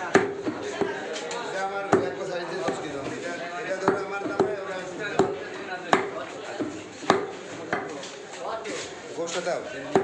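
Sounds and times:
cleaver chopping meat on wood: 0.0 - 1.0, 1.9 - 2.9, 3.8 - 8.0
voices chattering: 0.0 - 10.0.

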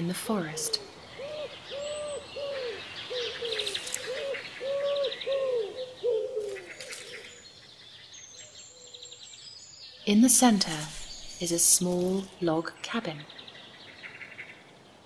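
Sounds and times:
low hooting bird calls: 0.4 - 7.5.

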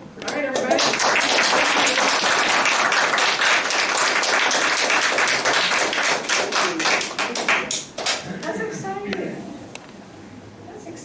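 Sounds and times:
congregation applauding: 0.3 - 8.2.

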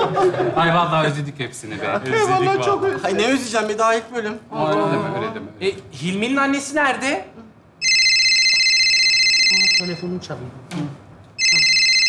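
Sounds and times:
phone ringing with trilling ring: 7.8 - 10.2, 11.4 - 12.0.

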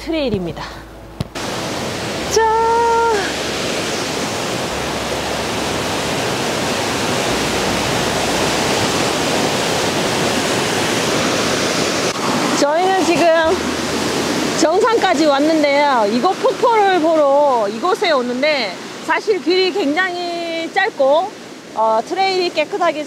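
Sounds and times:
waterfall rushing onto rocks: 1.3 - 19.0
person calling out: 2.3 - 3.4.

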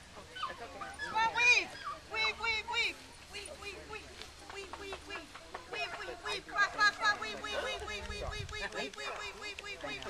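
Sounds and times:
dog high-pitched calls: 0.3 - 2.4.

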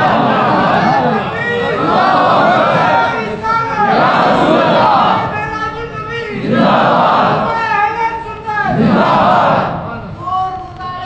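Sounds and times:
crowd chanting: 0.0 - 5.4, 6.3 - 7.6, 8.7 - 9.9.

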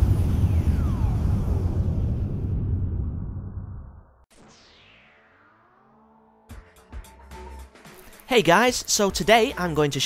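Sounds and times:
fiery blast deep rumble: 0.0 - 4.2.

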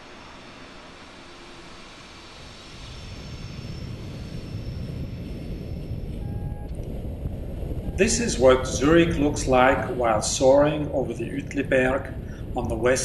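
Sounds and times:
wind rushing over camera: 2.4 - 13.0.

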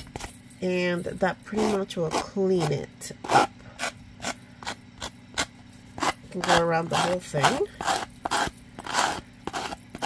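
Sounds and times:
sanding block scraping cardboard: 5.4 - 9.8.

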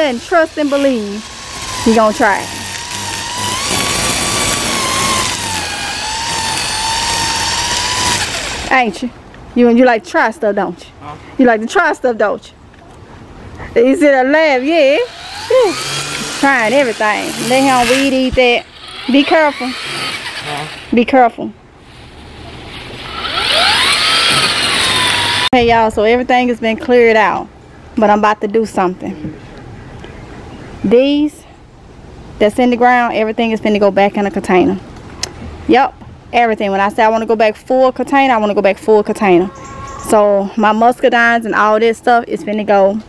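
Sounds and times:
string trimmer whining: 0.0 - 8.8, 14.4 - 21.1, 21.9 - 25.5.

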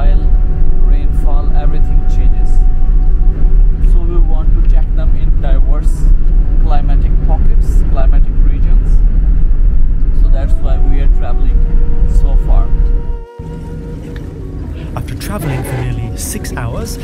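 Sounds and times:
bus engine and road rumble: 0.0 - 17.0.

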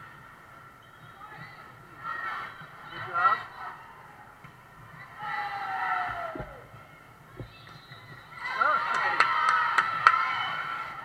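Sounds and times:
volleyball smacks: 6.0 - 8.2
overlapping raised voices: 8.2 - 11.0.

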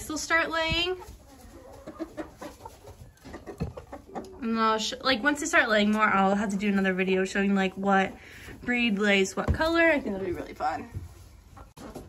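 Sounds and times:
hens clucking: 0.0 - 12.0.

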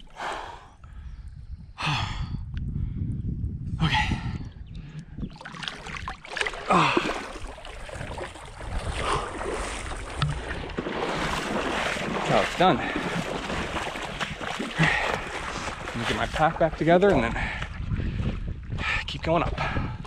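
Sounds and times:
man gasping and exhaling: 0.0 - 3.0, 3.7 - 5.2, 6.5 - 8.0, 8.8 - 9.9, 14.6 - 15.9
water splashing and sloshing: 4.9 - 18.4.

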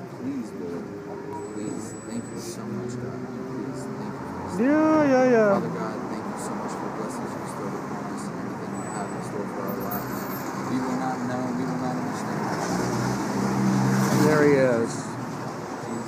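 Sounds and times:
low indistinct voices: 0.0 - 12.6
street traffic noise: 0.0 - 16.0
motor vehicle passing: 0.1 - 8.4, 9.3 - 16.0.

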